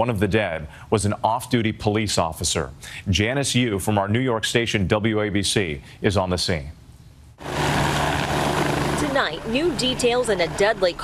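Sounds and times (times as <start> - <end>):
low hum: 7.2 - 11.0
helicopter hovering: 7.4 - 11.0.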